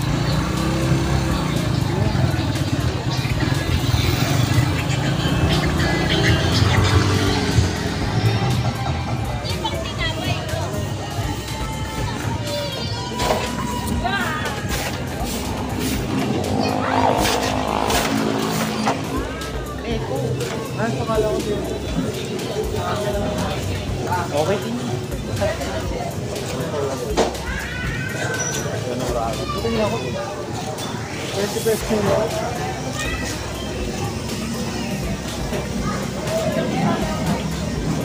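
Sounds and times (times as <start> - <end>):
background music: 0.0 - 38.0
vehicle engine rumbling: 0.0 - 38.0
voices: 0.0 - 38.0.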